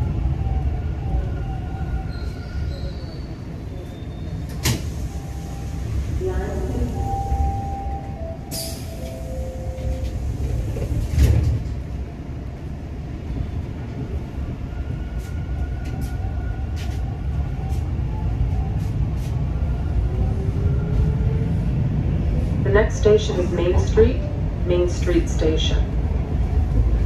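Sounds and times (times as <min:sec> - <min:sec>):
train whining tones: 0:00.0 - 0:11.8
subway train rumble: 0:00.0 - 0:27.0.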